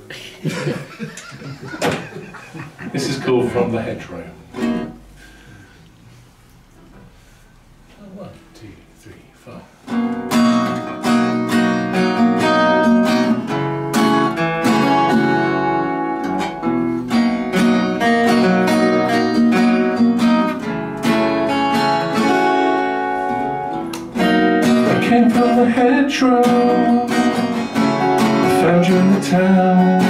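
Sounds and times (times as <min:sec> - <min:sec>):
acoustic guitar strumming chords: 0:03.4 - 0:05.2, 0:09.8 - 0:30.0
second guitar playing: 0:03.8 - 0:05.5, 0:09.8 - 0:30.0.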